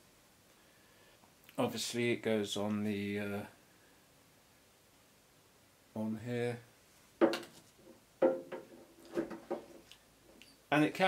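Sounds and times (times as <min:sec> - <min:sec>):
plastic knocking on metal tank: 0:07.2 - 0:07.5, 0:08.2 - 0:09.7.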